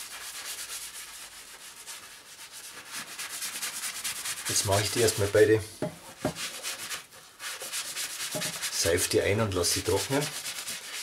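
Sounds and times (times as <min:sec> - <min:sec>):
sponge scrubbing leather: 0:00.0 - 0:05.4, 0:06.3 - 0:11.0.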